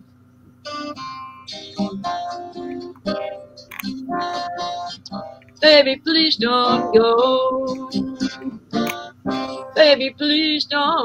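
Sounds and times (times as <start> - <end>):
blues guitar plucked notes: 0.5 - 11.0.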